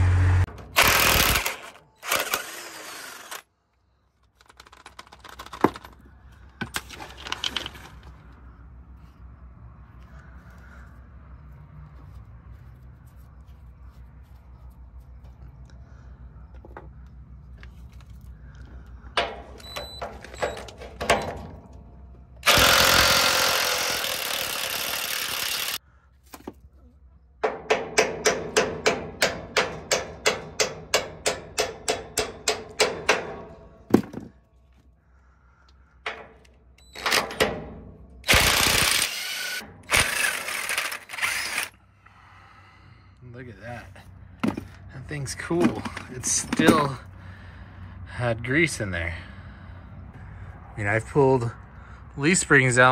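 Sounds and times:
hammer striking metal bolt: 27.4 - 33.7.

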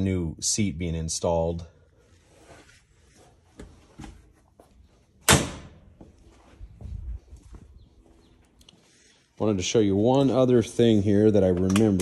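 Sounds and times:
door shutting bang: 5.2 - 5.8
faint low thumps: 6.0 - 8.2.

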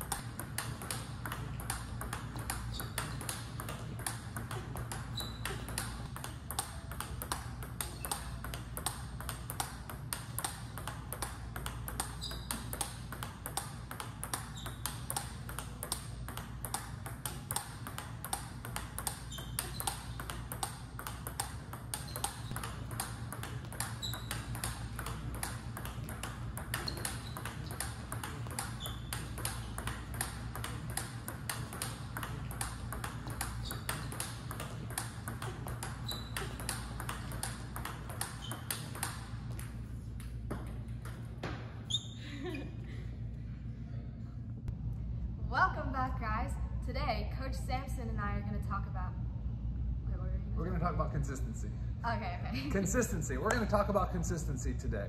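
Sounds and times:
table tennis ball clicking: 0.0 - 41.2
low room hum: 0.0 - 55.0
short high squeaks: 5.0 - 5.9, 12.1 - 12.8, 14.4 - 15.3, 19.1 - 20.4, 23.8 - 24.8, 26.7 - 27.8, 28.5 - 29.8, 35.4 - 37.0, 38.1 - 39.1, 41.9 - 42.2.

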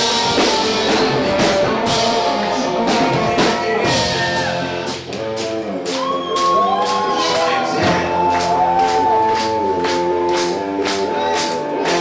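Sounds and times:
person singing: 0.0 - 5.0, 6.0 - 12.0
drum kit beat: 0.0 - 12.0
electric guitars: 0.0 - 12.0.

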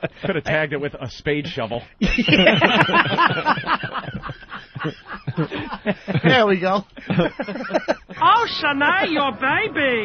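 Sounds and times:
men chuckling: 0.0 - 0.5, 1.5 - 9.5.

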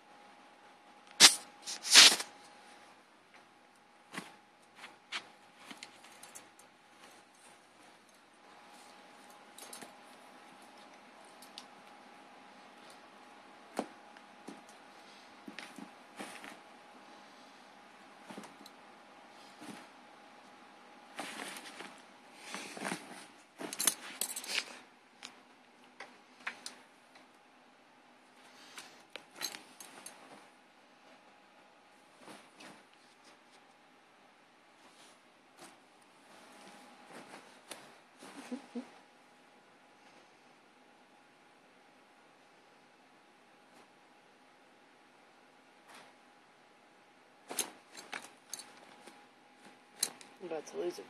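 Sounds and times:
fabric bag rustling: 21.1 - 24.8.

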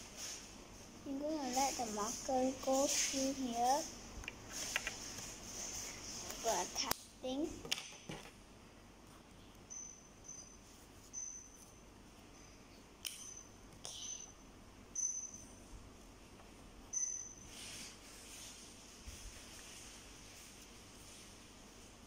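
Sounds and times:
scratchy rubbing on paper: 1.1 - 3.9, 4.5 - 6.8
marker squeaking on paper: 9.7 - 11.7.

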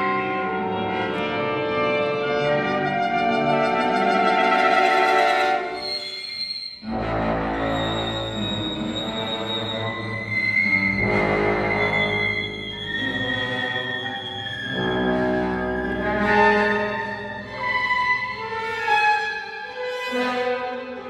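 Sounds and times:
orchestra playing held chords: 0.0 - 5.8, 9.9 - 18.7
bowed strings: 6.8 - 21.0.

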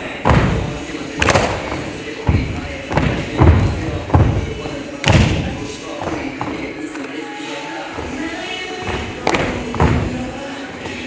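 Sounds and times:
pop dance music with vocals: 0.0 - 11.0
heavy thudding hits: 0.2 - 5.6.

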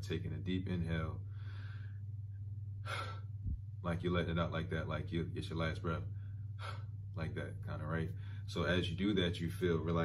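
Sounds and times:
man breathing deeply: 1.2 - 3.7, 6.1 - 7.1, 8.1 - 8.5.

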